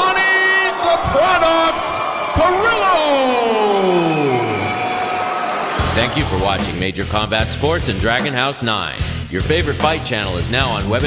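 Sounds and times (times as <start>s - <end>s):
announcer's long amplified call: 0.0s - 6.4s.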